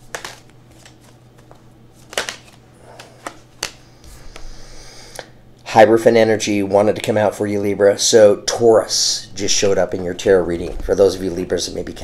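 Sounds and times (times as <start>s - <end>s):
cards being shuffled: 0.0s - 4.6s.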